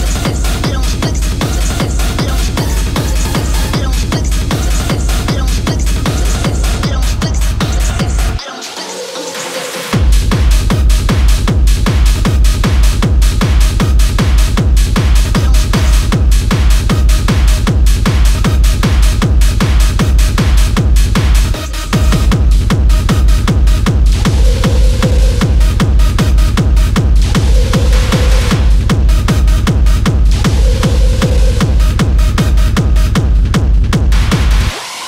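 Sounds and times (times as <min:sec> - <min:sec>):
pounding kick drum: 0:00.0 - 0:08.4, 0:10.0 - 0:34.8
hard techno track: 0:00.0 - 0:35.0.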